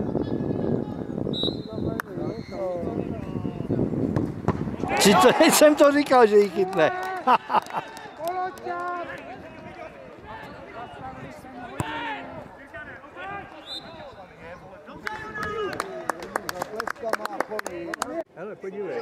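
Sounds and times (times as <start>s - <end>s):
men calling out: 4.8s - 9.1s.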